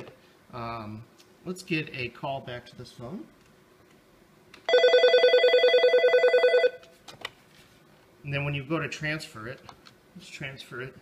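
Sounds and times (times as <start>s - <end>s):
desk phone ringing: 4.7s - 6.9s.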